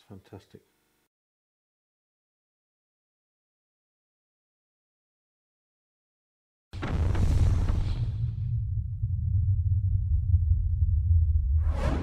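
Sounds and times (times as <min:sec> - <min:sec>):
steady low rumble: 0:06.8 - 0:12.0
whooshing noise: 0:10.1 - 0:12.0.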